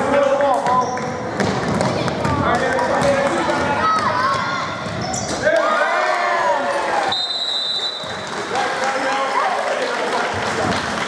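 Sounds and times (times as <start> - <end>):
sneaker squeaks: 0.6 - 2.4, 4.4 - 5.5
basketball dribbling on hardwood: 0.6 - 3.3
referee's whistle: 7.1 - 8.1.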